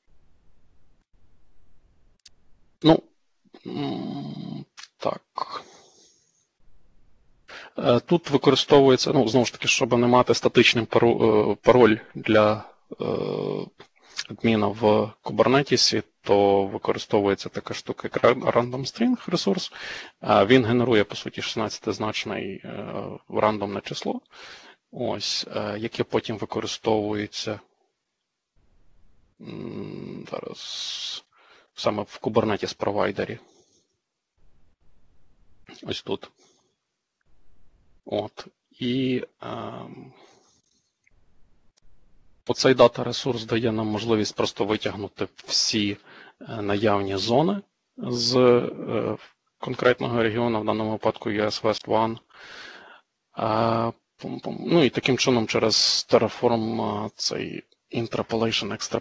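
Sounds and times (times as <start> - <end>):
man making non-word vocal sounds: 2.8 - 3.0, 3.6 - 5.8, 7.5 - 27.6, 29.4 - 33.4, 35.6 - 36.3, 38.1 - 40.2, 42.5 - 52.6, 53.4 - 59.0
man breathing close to microphone: 19.7 - 20.2, 24.3 - 24.9, 52.3 - 53.0.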